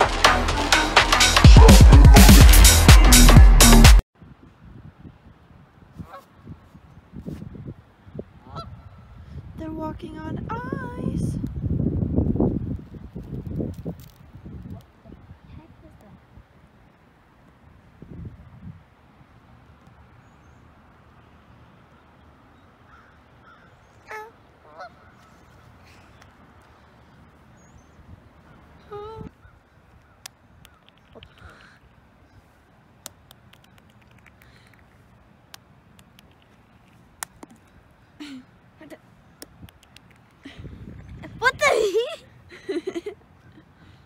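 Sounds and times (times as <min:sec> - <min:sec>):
geese honking: 0:23.5 - 0:25.5
sharp ticks: 0:30.2 - 0:31.5, 0:33.0 - 0:37.7, 0:39.4 - 0:40.4.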